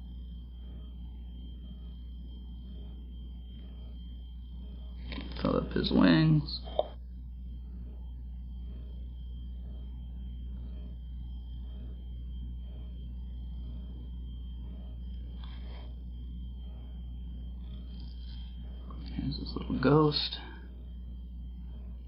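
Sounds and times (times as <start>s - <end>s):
steady low hum: 0.0s - 22.0s
thin high whine: 0.0s - 22.0s.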